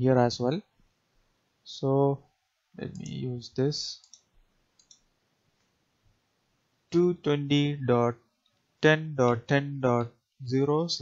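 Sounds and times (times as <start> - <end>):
faint computer mouse clicks: 4.0 - 5.7.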